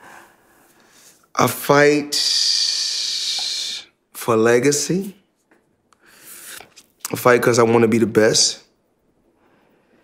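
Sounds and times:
man speaking: 1.3 - 5.3, 7.0 - 8.8.

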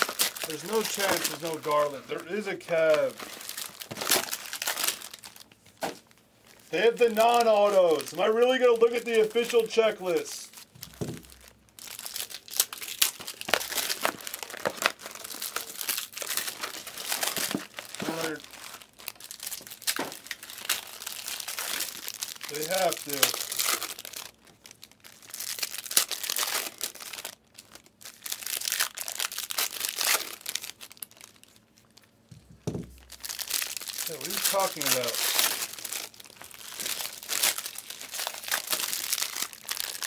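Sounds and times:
card pack wrappers crinkling: 0.0 - 40.0.

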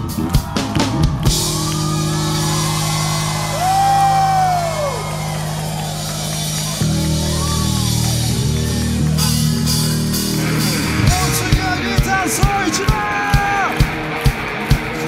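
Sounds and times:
drums beat: 0.0 - 15.0
funk-rock band playing live: 0.0 - 15.0.

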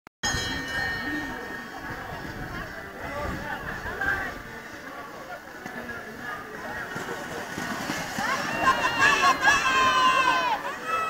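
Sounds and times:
outdoor background noise: 0.2 - 11.0
spectators talking and calling: 0.2 - 11.0.

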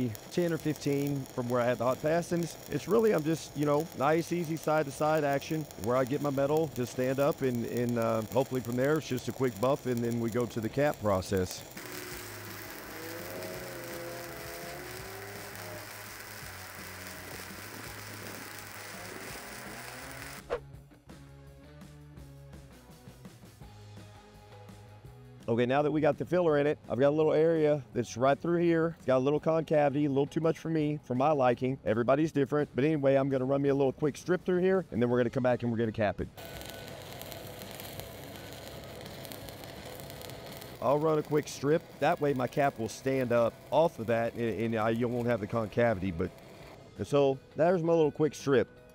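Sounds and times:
welding arc crackling and hissing: 0.0 - 20.6, 36.4 - 46.8.

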